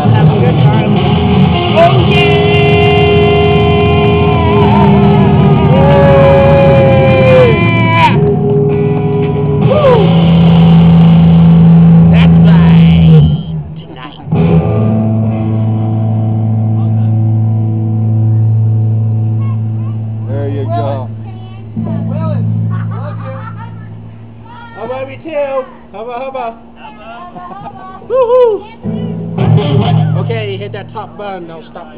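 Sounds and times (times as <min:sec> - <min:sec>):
loud electric guitar: 0:00.0 - 0:25.9, 0:27.6 - 0:31.9
man speaking: 0:30.2 - 0:31.9.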